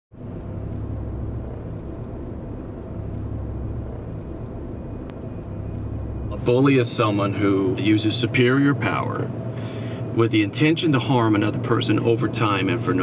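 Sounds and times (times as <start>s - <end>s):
low rumble with hiss: 0.2s - 13.0s.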